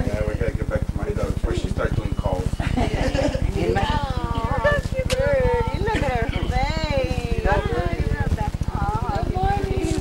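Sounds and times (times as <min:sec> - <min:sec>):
rapid low pulsing: 0:00.0 - 0:10.0.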